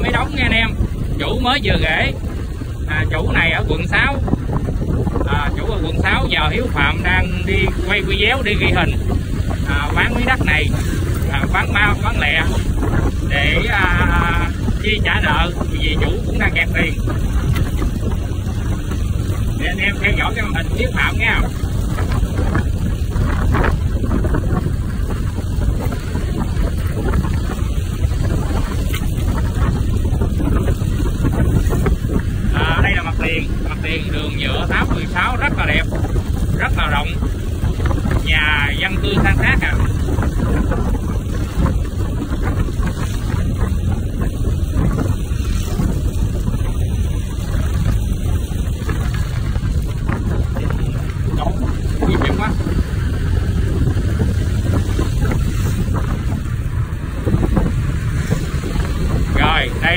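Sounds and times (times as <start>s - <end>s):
motorbike engine and road rumble: 0.0s - 59.9s
wind buffeting microphone: 0.0s - 59.9s.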